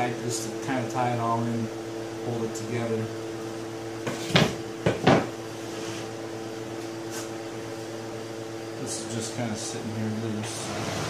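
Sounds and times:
steady hum: 0:00.0 - 0:11.0
wooden knocks on workbench: 0:04.0 - 0:05.3.

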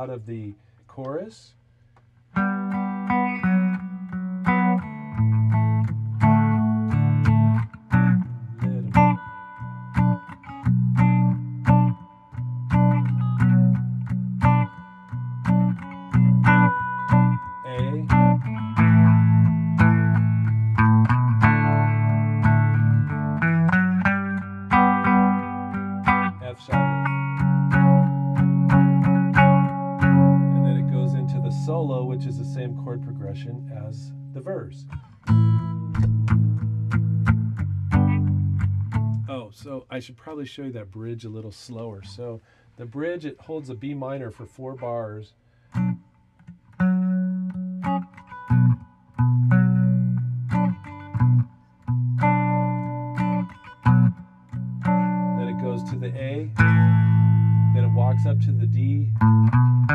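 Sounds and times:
tenor guitar strumming: 0:02.3 - 0:39.8, 0:43.8 - 0:59.9.

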